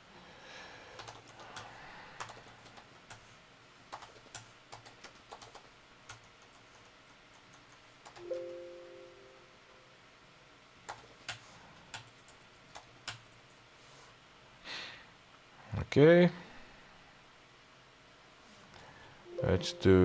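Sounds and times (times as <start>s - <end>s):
keyboard keys clicking: 3.9s - 6.8s
two-tone electronic chime: 8.2s - 9.6s, 19.3s - 20.0s.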